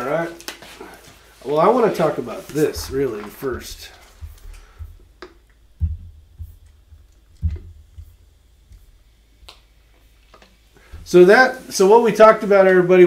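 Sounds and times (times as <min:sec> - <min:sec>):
soft low thump: 0:02.7 - 0:05.1, 0:05.7 - 0:09.0, 0:10.9 - 0:11.2.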